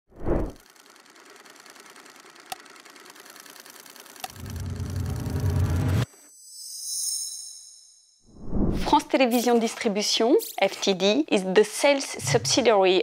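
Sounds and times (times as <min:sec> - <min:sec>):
fast mechanical ticking: 0:00.6 - 0:05.9.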